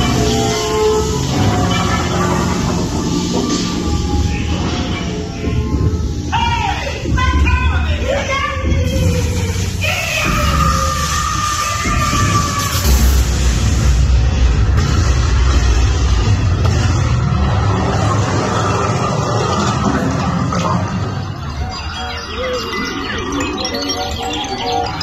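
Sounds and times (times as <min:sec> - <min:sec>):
music and sound effects: 0:00.0 - 0:25.0
heavy low rumble: 0:12.2 - 0:21.5.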